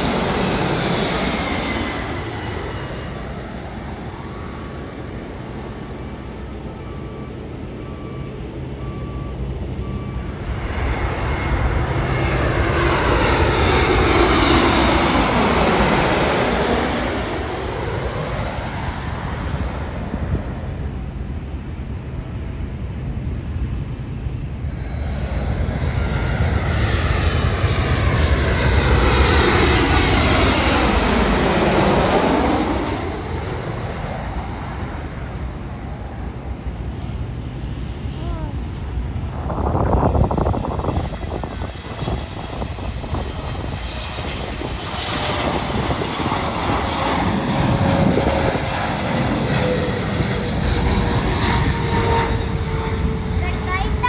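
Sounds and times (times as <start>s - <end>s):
jet airliner passing overhead: 0.0s - 54.0s.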